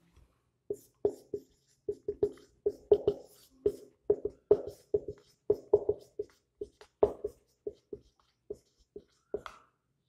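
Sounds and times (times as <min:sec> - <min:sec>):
marker pen writing on whiteboard: 0:00.7 - 0:09.7.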